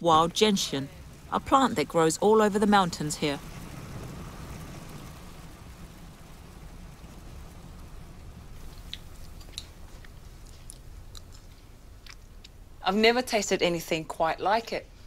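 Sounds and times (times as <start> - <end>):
low background rumble: 0.0 - 15.0.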